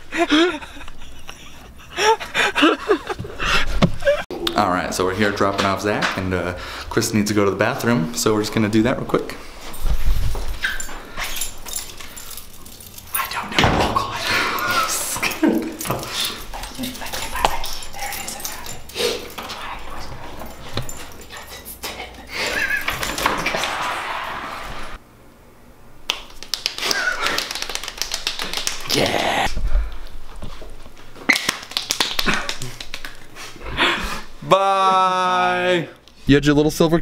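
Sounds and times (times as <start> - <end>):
dog whining and yipping: 10.6 - 11.6
door opening: 13.3 - 14.4.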